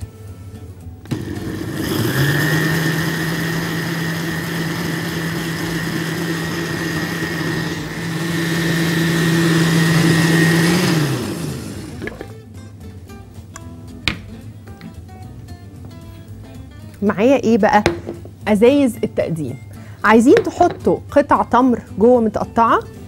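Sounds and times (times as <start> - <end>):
blender motor whining: 1.1 - 12.3.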